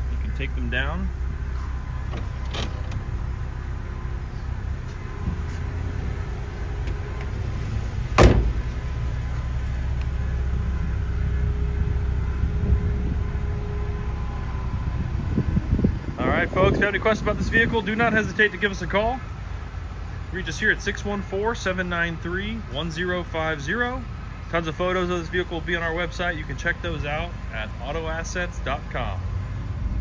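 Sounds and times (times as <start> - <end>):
low rumble: 0.0 - 18.2
power window motors whirring: 1.6 - 3.4
sharp thump: 8.2 - 8.8.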